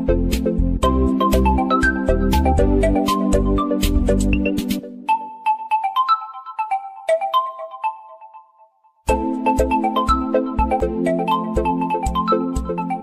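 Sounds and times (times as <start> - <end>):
background music with beat: 0.0 - 8.0, 9.0 - 13.0.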